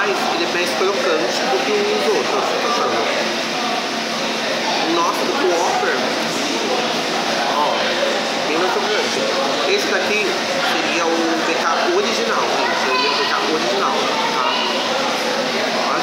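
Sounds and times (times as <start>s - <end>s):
chatter of many people: 0.0s - 16.0s.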